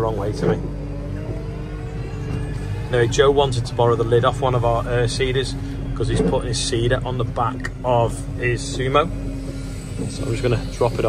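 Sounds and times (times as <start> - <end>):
engine hum from inside cab: 0.0 - 11.0.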